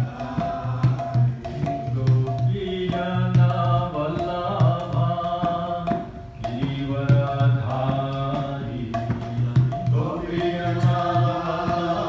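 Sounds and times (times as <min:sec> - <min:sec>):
hand drum strokes: 0:00.0 - 0:12.0
man chanting a devotional song: 0:00.0 - 0:12.0.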